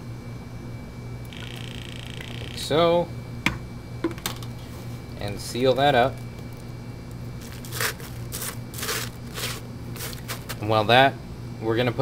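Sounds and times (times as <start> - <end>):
steady low hum: 0.0 - 12.0
crushed ice crunching: 7.2 - 10.7.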